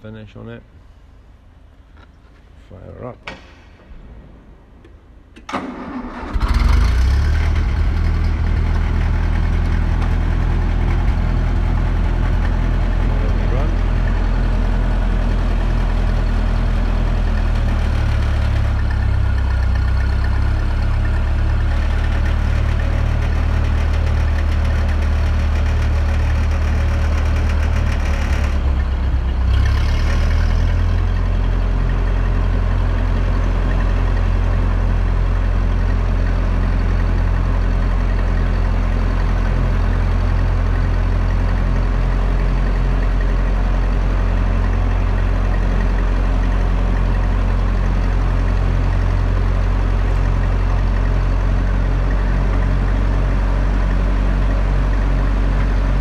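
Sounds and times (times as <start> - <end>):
tractor engine starting and idling: 3.2 - 56.0.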